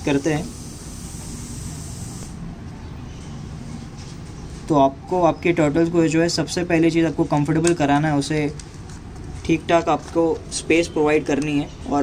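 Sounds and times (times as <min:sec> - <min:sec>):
steady background hiss: 0:00.0 - 0:02.6.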